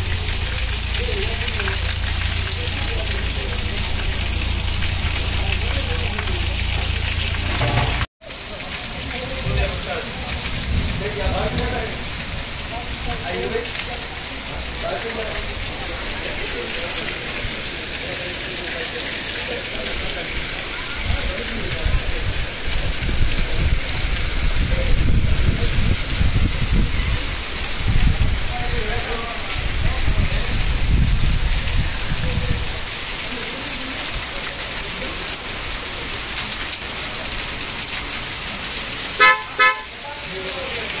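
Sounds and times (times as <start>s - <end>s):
low rumble: 0.0s - 8.1s
heavy rain on a street: 0.0s - 41.0s
vehicle horn toots: 39.2s - 40.0s.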